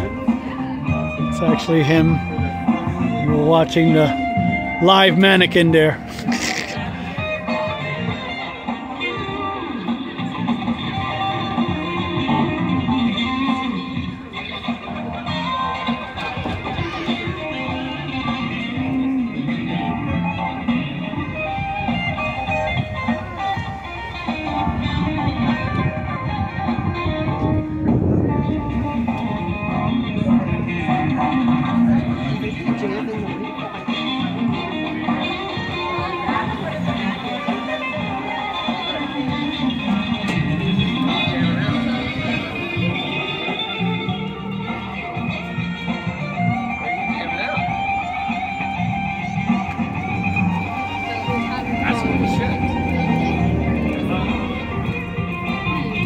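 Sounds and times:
electric guitar through amplifier: 6.0s - 56.0s.

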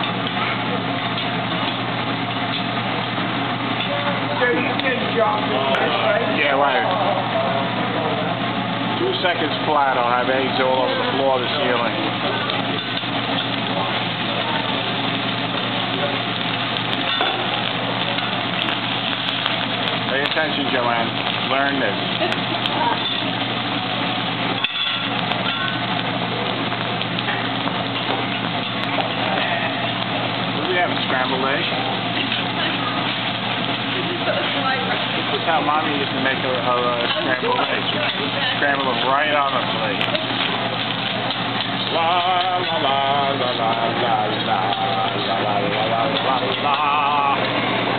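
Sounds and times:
eggs sizzling on a griddle: 0.0s - 47.9s
restaurant chatter: 0.0s - 47.9s.

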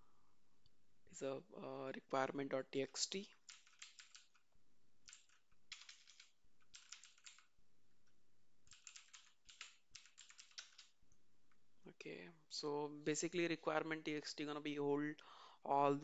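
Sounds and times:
computer keyboard typing: 3.4s - 4.4s, 5.0s - 7.5s, 8.6s - 11.0s.

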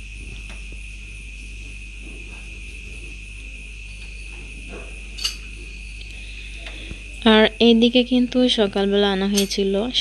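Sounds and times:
insects chirring: 0.0s - 10.0s
low hum: 0.0s - 10.0s.

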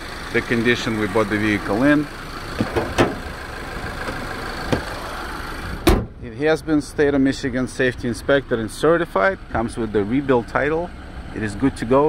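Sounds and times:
car engine idling: 0.0s - 12.0s
car hood slamming shut: 2.5s - 3.4s, 5.8s - 6.2s.

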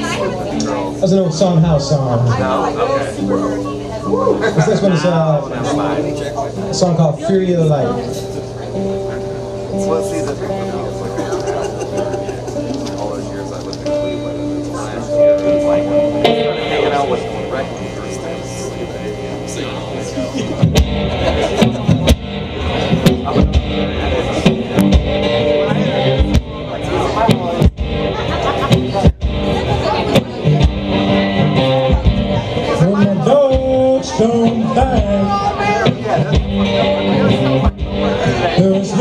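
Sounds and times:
guitar strumming: 0.0s - 39.0s.

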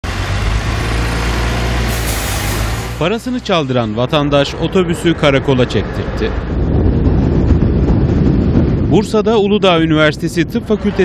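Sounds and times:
bus engine droning: 0.0s - 8.9s
road noise: 0.0s - 11.0s.

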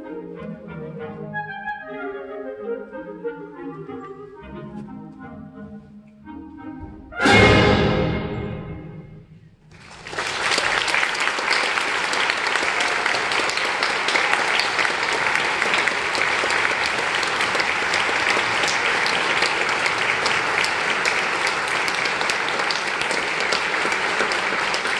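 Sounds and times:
audience applause: 9.7s - 24.9s.

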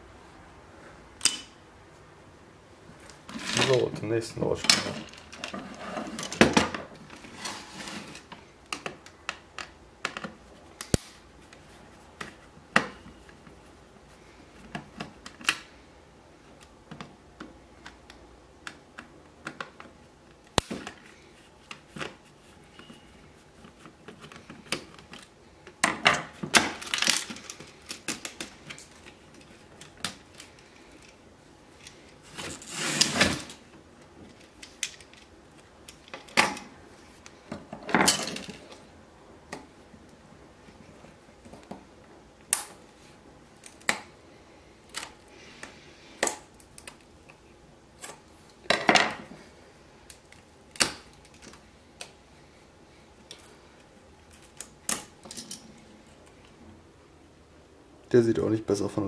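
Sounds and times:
noisy handling sound: 2.9s - 57.0s
parts clattering on workbench: 37.5s - 38.8s, 48.7s - 49.3s.

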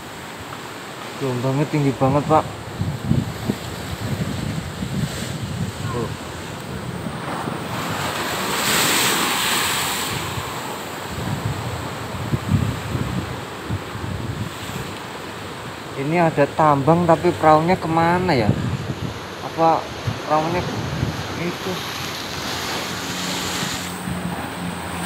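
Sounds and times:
surf washing over sea wall: 0.0s - 25.0s
wind buffeting microphone: 1.8s - 25.0s.

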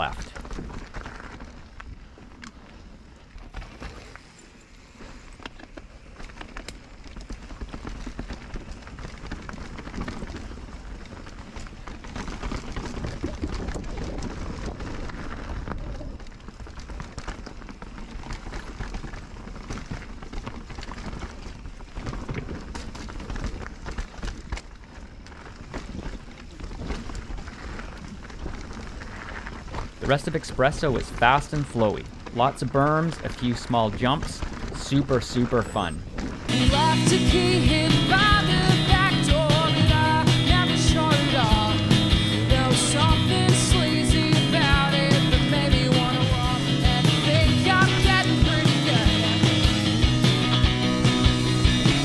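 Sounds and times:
bike tyres crunching over gravel: 0.0s - 52.0s.

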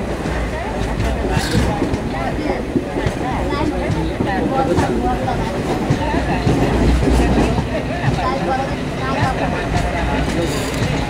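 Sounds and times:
rail joint clicks: 0.0s - 11.0s
train wheels rumbling on track: 0.0s - 11.0s.

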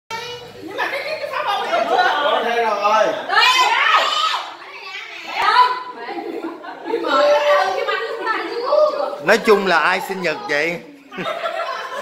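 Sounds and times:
young children calling: 3.3s - 11.3s.

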